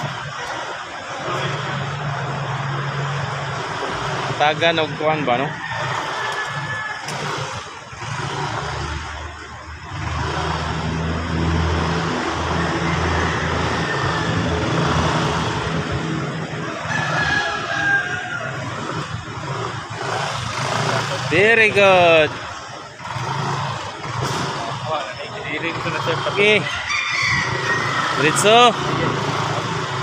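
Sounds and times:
scooter engine running: 0:00.0 - 0:30.0.

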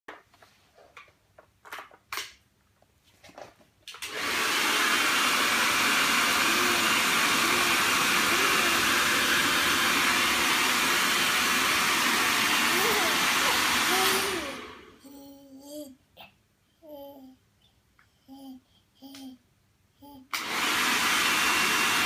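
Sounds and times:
hairdryer blowing: 0:04.0 - 0:15.0, 0:20.3 - 0:22.0
baby squealing and cooing: 0:12.5 - 0:17.4
baby babbling: 0:12.6 - 0:20.3.

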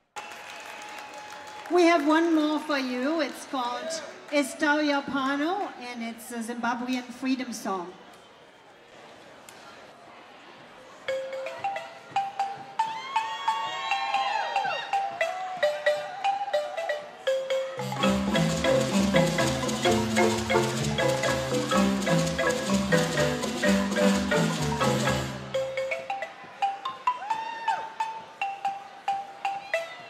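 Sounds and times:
marimba ensemble playing: 0:11.0 - 0:30.0.

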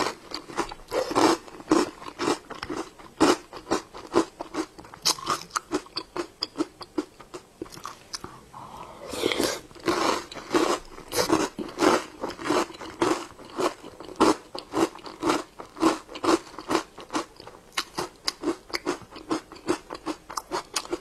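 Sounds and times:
close chewing of dessert pearls: 0:00.0 - 0:08.4, 0:09.0 - 0:21.0.

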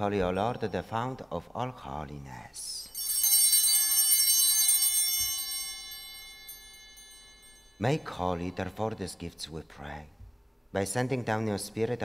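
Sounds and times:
altar bells ringing: 0:02.7 - 0:08.9.

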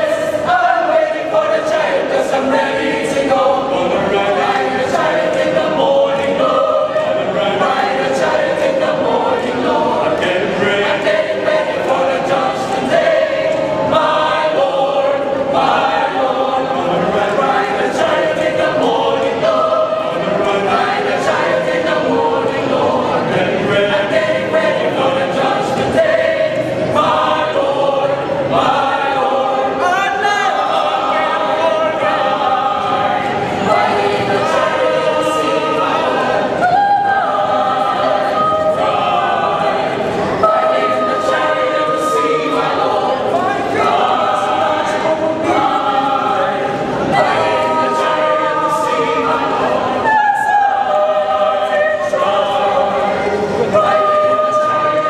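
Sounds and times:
mixed choir singing in harmony: 0:00.0 - 0:55.0.

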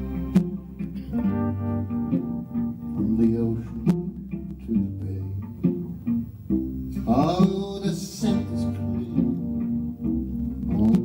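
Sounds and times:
cello: 0:00.0 - 0:11.0
electric guitar picking: 0:00.0 - 0:11.0
low bass line: 0:00.0 - 0:11.0.

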